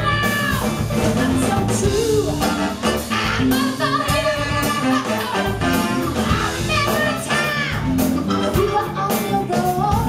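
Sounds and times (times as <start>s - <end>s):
soul band playing: 0.0s - 10.0s
women singing: 0.0s - 10.0s.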